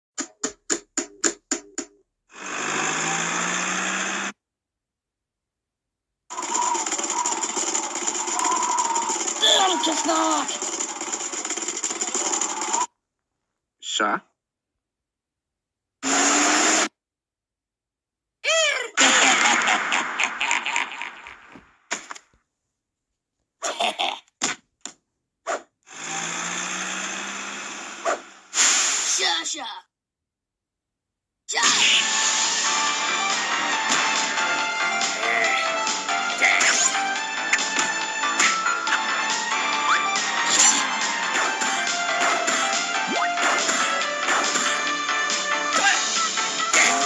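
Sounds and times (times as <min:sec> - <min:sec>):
cartoon small motor running: 0:02.3 - 0:04.4, 0:06.3 - 0:12.9, 0:16.0 - 0:16.9, 0:25.9 - 0:28.2
loud rattling engine-like noise: 0:06.3 - 0:12.9
high-pitched cartoon voice shouting: 0:09.4 - 0:10.6, 0:18.4 - 0:19.0
loud hiss: 0:28.5 - 0:29.2.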